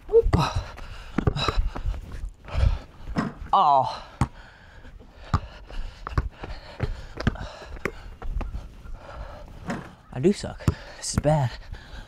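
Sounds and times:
basketball bouncing on concrete: 0.2 - 1.8, 4.1 - 4.4, 5.2 - 8.2, 10.6 - 11.4
heavy breathing: 0.4 - 3.2, 3.8 - 12.0.

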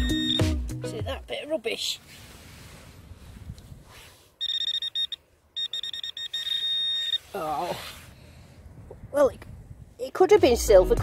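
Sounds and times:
metal detector beeping: 0.0 - 0.6, 4.4 - 7.3.

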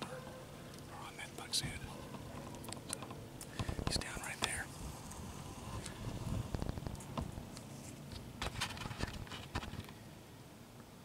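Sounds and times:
man whispering: 0.9 - 2.0, 3.7 - 4.8.

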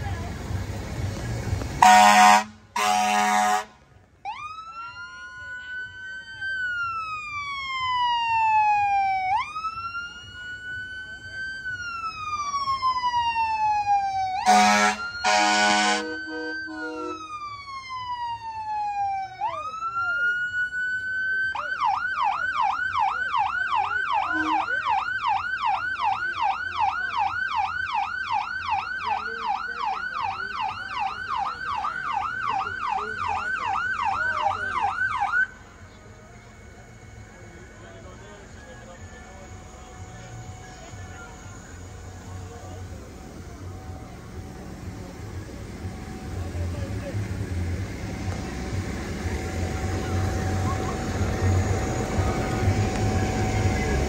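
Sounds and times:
short horn blasts: 1.8 - 3.8, 14.4 - 17.2
emergency vehicle siren wailing: 1.8 - 54.0.

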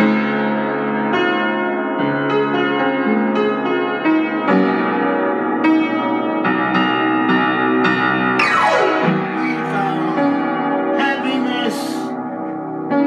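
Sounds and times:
piano chords: 0.0 - 13.0.

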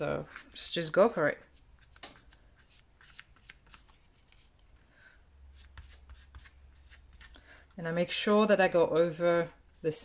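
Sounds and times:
paper rustling: 1.5 - 4.8
brush dabbing: 5.5 - 8.0.

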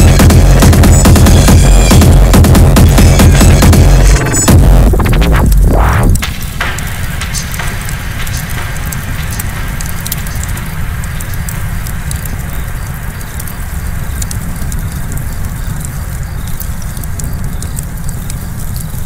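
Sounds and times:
dense low rumble: 0.0 - 16.2
scattered crackles: 0.0 - 19.0.

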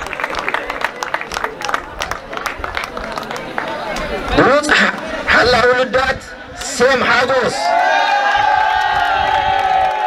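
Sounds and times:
group of people cheering: 7.3 - 10.0.

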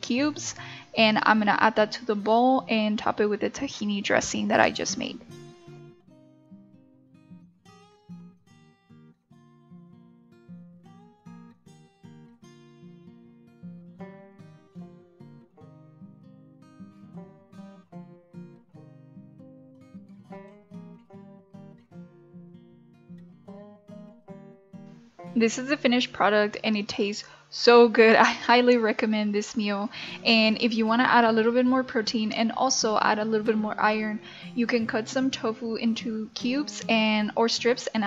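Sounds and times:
plucked acoustic guitar: 4.6 - 26.4.

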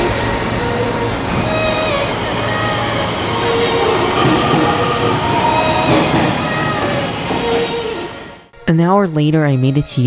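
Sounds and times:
electric train running past: 0.0 - 8.5
faint rising tones: 0.0 - 8.5.

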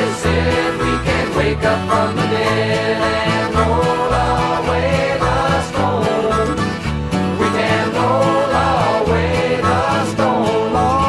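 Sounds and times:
country-rock band music: 0.0 - 11.0.

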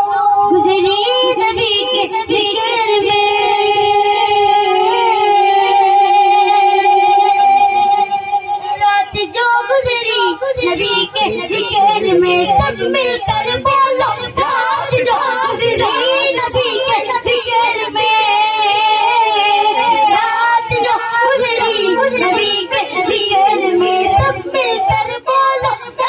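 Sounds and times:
boy singing through pa: 0.0 - 26.0.

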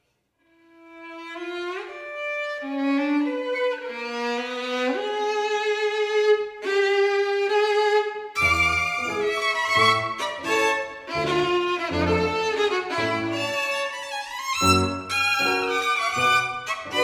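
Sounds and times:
slow violin melody: 0.5 - 17.0
grand piano bass notes: 8.4 - 13.4.

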